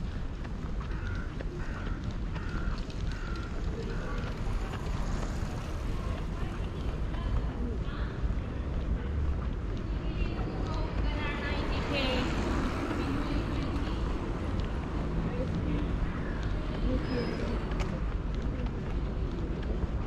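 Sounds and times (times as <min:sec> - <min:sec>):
distant traffic: 0:00.0 - 0:20.0
voices: 0:00.0 - 0:20.0.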